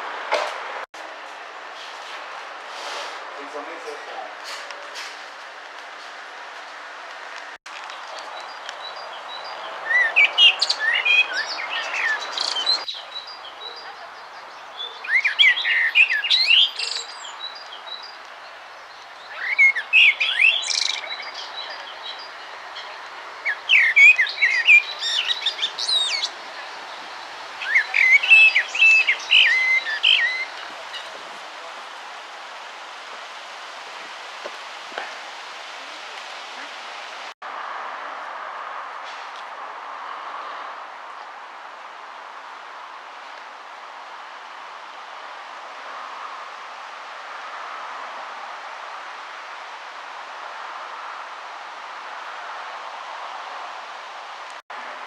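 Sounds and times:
songbird chirping: 0:07.7 - 0:34.4.

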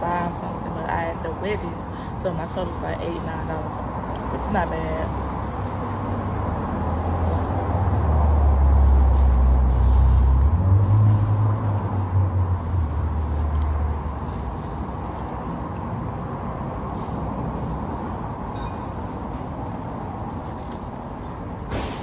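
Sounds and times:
heavy vehicle engine rumbling: 0:01.6 - 0:22.0.

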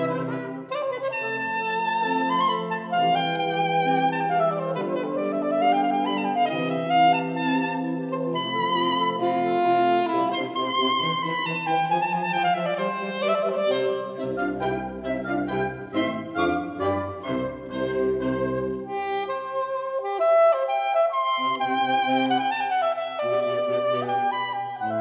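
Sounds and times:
soprano saxophone solo: 0:00.0 - 0:25.0
wind ensemble playing: 0:00.0 - 0:25.0.

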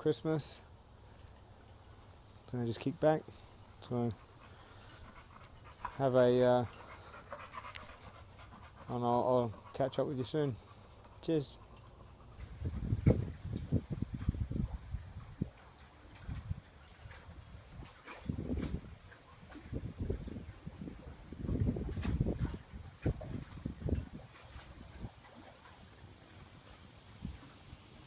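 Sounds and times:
wind buffeting microphone: 0:03.8 - 0:25.5.

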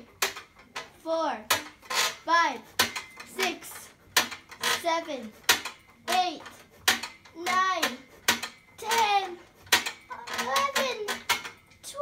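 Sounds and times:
metal frame clinking: 0:02.8 - 0:11.9.

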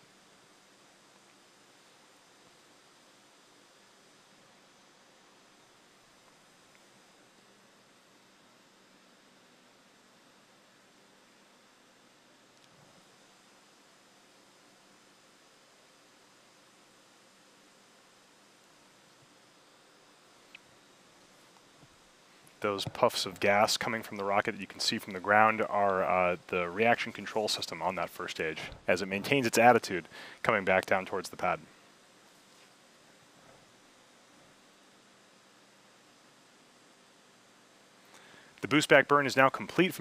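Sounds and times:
faint hum: 0:00.0 - 0:40.0
faint steady hiss: 0:00.0 - 0:40.0.

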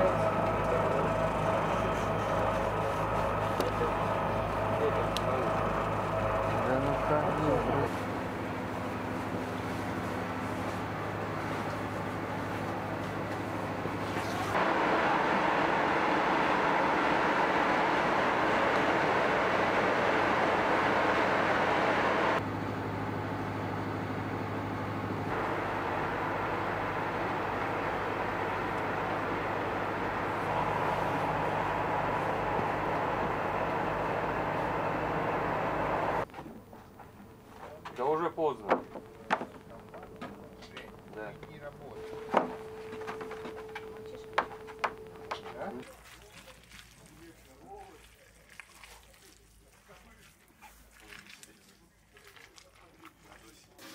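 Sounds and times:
machinery humming and rushing: 0:00.0 - 0:45.8.

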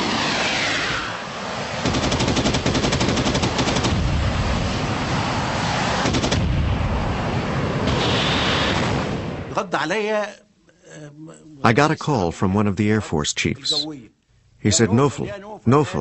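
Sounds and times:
falling rush of noise: 0:00.0 - 0:02.3, 0:04.0 - 0:09.6
rapid automatic gunfire: 0:01.8 - 0:04.0, 0:06.0 - 0:06.5.

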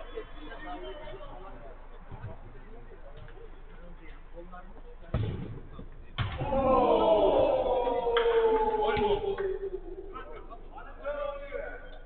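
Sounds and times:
players calling and shouting: 0:00.0 - 0:12.0.

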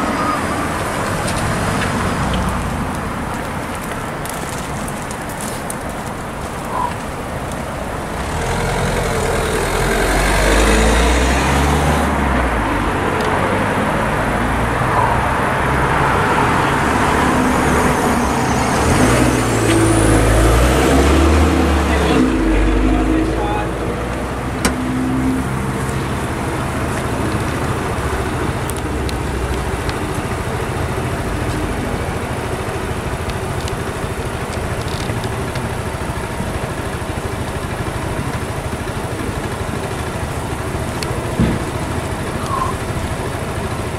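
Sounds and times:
hum of waiting traffic: 0:00.0 - 0:43.9
car passing close by: 0:08.0 - 0:30.0.

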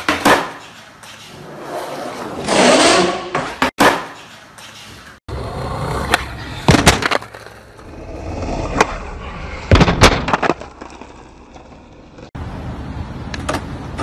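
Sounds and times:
skateboard clacking on ground: 0:00.0 - 0:01.5, 0:06.0 - 0:07.9
skateboard wheels rolling on pavement: 0:00.0 - 0:14.0.

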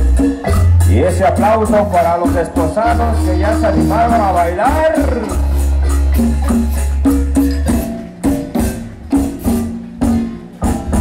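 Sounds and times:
electric bass: 0:00.0 - 0:11.0
marimba: 0:00.0 - 0:11.0
percussion keeping a steady beat: 0:00.0 - 0:11.0.

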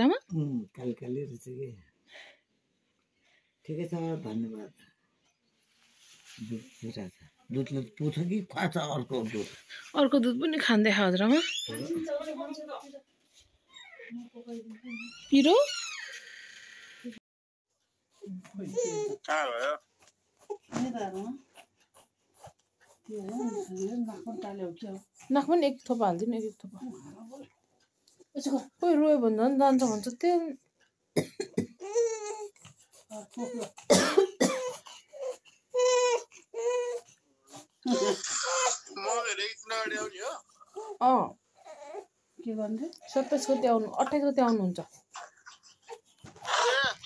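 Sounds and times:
baby whimpering: 0:18.6 - 0:19.8, 0:31.8 - 0:33.9, 0:34.6 - 0:39.0, 0:40.2 - 0:42.1, 0:43.0 - 0:44.0, 0:45.1 - 0:47.0
baby coughing: 0:31.2 - 0:32.1, 0:33.6 - 0:36.0, 0:37.9 - 0:39.0, 0:45.1 - 0:47.0.

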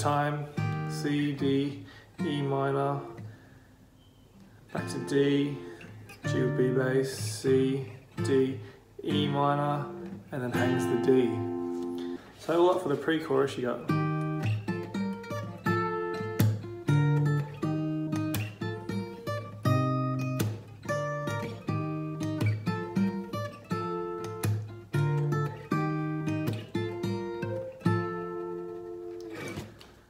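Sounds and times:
acoustic guitar strumming chords: 0:00.0 - 0:30.0.

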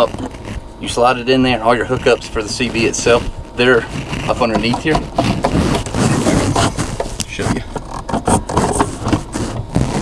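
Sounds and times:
close handling noise: 0:00.0 - 0:10.0
hands scraping plastic: 0:00.0 - 0:10.0.

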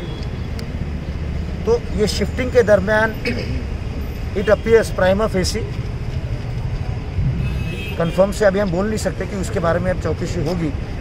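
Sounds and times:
street traffic rumble: 0:00.0 - 0:11.0
man speaking: 0:07.9 - 0:10.8.

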